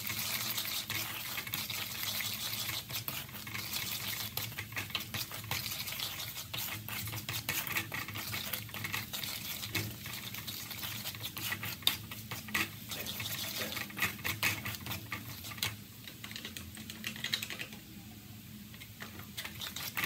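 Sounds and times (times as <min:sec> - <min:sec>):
wooden spatula scraping metal pan: 0:00.0 - 0:16.6, 0:18.8 - 0:20.0
light sizzle of oil: 0:00.0 - 0:20.0.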